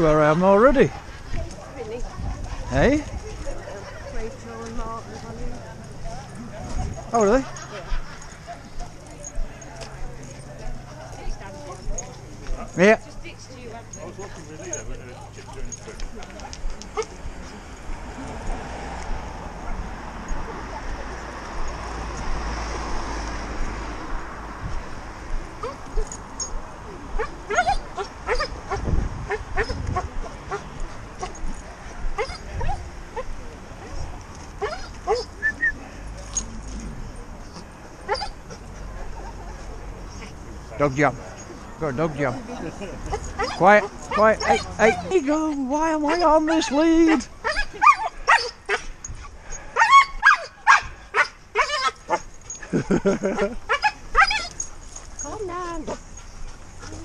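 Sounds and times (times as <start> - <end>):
road noise: 0.0 - 57.0
dogs barking and whining: 25.6 - 33.4, 34.6 - 36.8, 37.5 - 40.3, 43.0 - 57.0.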